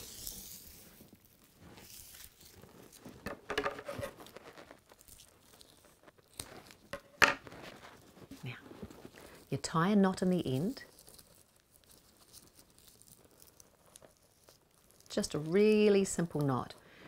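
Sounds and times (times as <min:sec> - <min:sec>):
raffia rustling and crinkling: 0:00.0 - 0:17.0.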